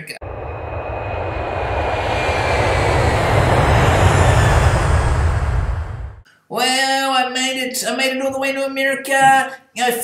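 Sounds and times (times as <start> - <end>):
airplane engine rumble: 0.2 - 6.2
faint high whine: 0.2 - 6.2.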